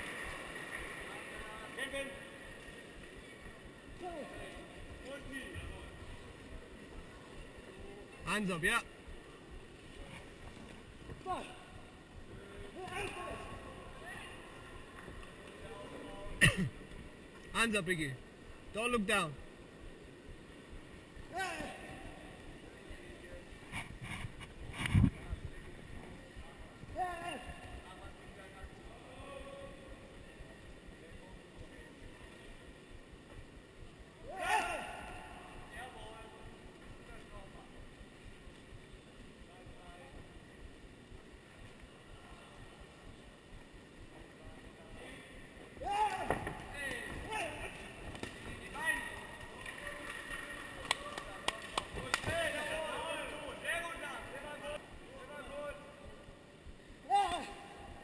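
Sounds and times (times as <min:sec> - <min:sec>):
crowd and hall noise: 0:00.0 - 0:58.0
shouted voices: 0:34.2 - 0:35.5, 0:45.8 - 0:47.9, 0:57.0 - 0:57.8.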